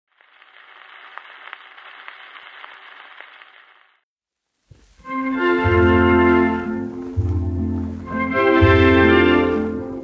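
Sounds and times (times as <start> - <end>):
record crackles and clicks: 0.1 - 5.1
record surface hiss: 0.1 - 10.0.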